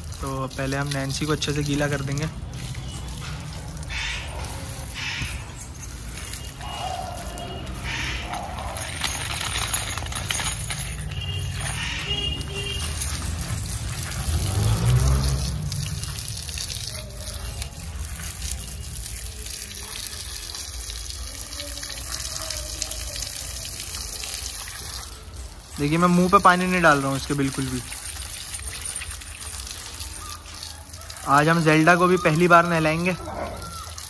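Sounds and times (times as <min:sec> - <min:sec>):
water splashing on paving: 0:00.0 - 0:34.0
water spraying from garden hose: 0:00.0 - 0:34.0.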